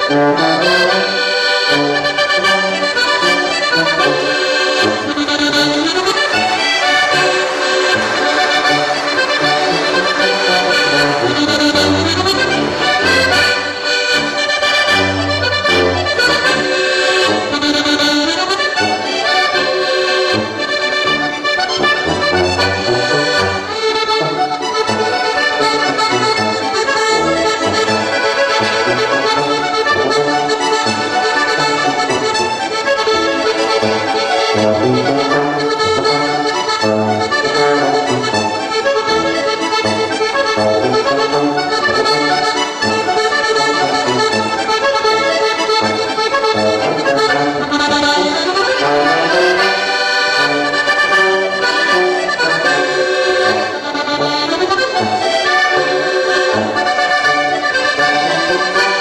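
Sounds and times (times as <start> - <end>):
accordions playing folk music: 0.0 - 59.0.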